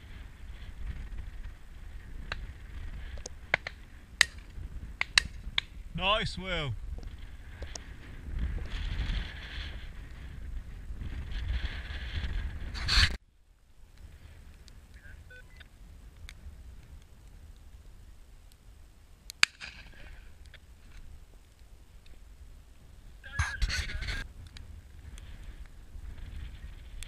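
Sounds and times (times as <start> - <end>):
wind buffeting microphone: 0.0 - 13.2, 19.7 - 27.0
faint wind noise: 0.0 - 27.0.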